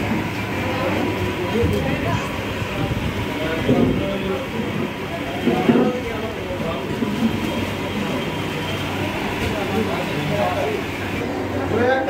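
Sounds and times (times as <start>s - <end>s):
overlapping voices of diners: 0.0s - 12.0s.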